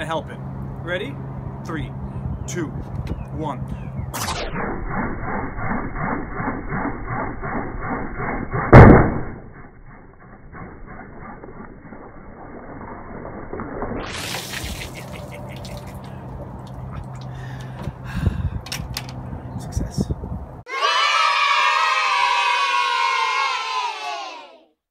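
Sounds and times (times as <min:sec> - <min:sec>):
balloon bursting bang: 0:08.6 - 0:09.5.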